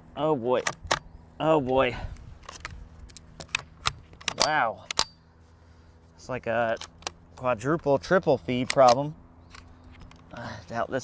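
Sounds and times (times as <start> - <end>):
rifle action clicking and rattling: 2.4 - 5.2, 6.6 - 7.2, 7.8 - 10.4.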